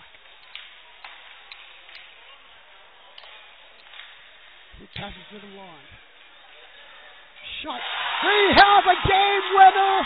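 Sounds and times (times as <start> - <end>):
sharp clicks of sticks and puck: 0.0 - 2.2, 3.2 - 5.3.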